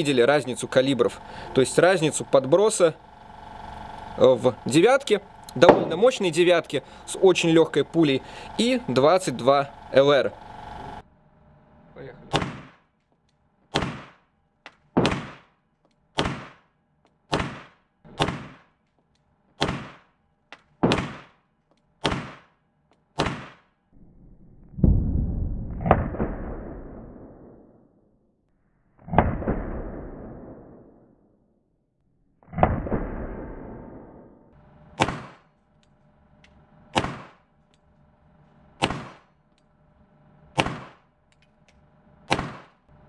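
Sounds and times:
loud echoing shots: 4.4s - 8.1s, 15.0s - 15.5s, 40.6s - 41.1s.

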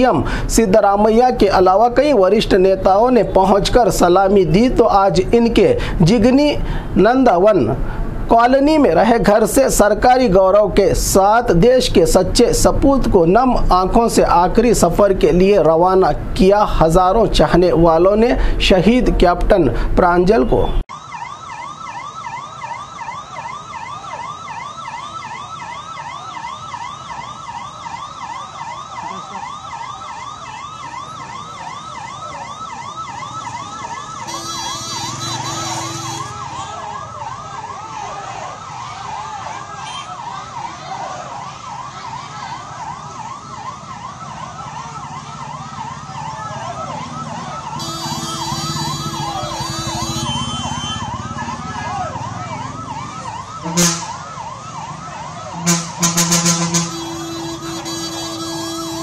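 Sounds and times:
police siren wailing: 0.0s - 18.2s, 20.3s - 59.0s
steady low siren tone: 20.4s - 59.0s.

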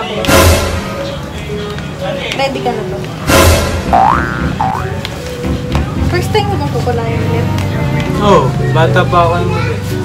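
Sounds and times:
background music: 0.0s - 10.0s
rising boing sounds: 3.9s - 5.0s.

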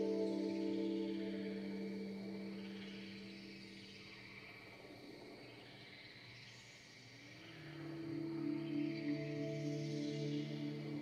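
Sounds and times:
ambient electronic drone music: 0.0s - 4.7s, 7.4s - 11.0s
faint high hissing texture: 0.0s - 11.0s.

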